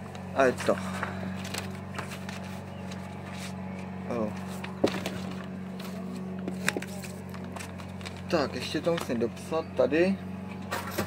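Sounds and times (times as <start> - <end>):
papers rustling and clicking: 0.0 - 9.4
bus interior hum: 0.0 - 11.0.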